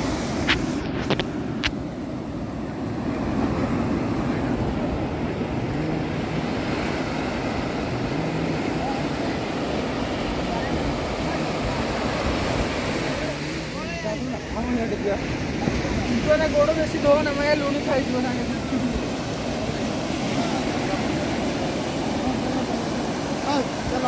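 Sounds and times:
ocean surf breaking: 0.0 - 24.0
faint voices: 2.7 - 24.0.

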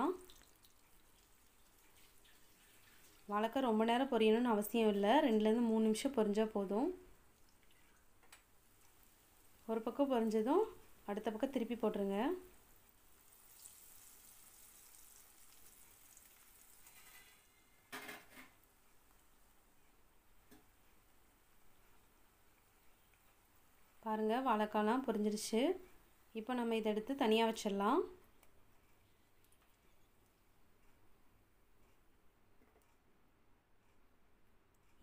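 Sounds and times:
slices sizzling in oil: 0.1 - 3.6, 6.0 - 17.8.

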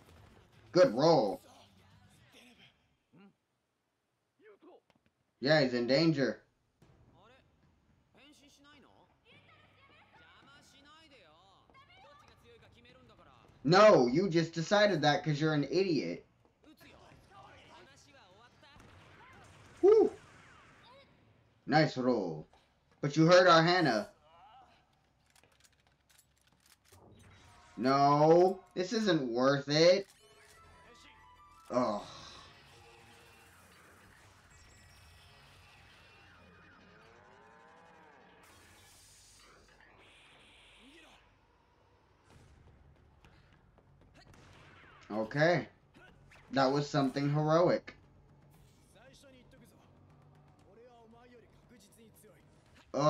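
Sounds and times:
television dialogue: 0.0 - 34.6, 36.2 - 42.0, 43.3 - 53.0.

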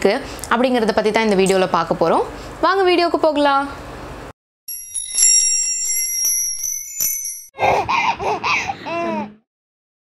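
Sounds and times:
bell-like chiming jingle: 4.7 - 7.6.

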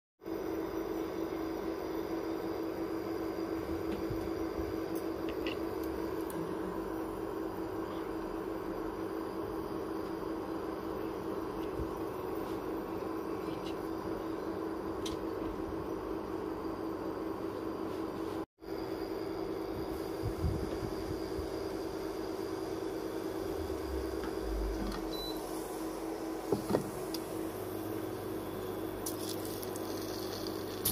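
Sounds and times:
steady machine hum: 0.2 - 30.9.

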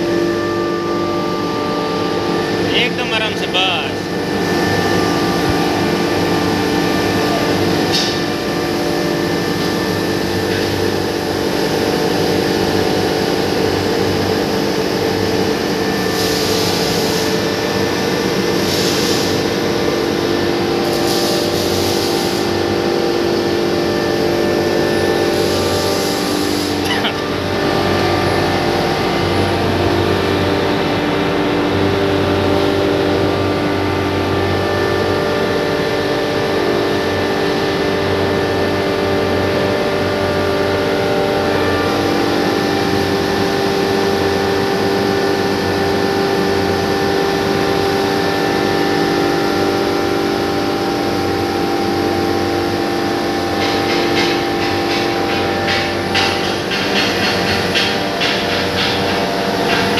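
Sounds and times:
hammer mill humming: 22.4 - 36.0, 51.4 - 59.9.

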